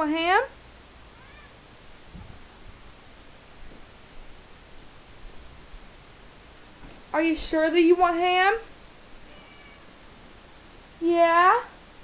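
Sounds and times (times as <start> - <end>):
cat meowing faintly: 1.2 - 1.6, 9.2 - 10.0.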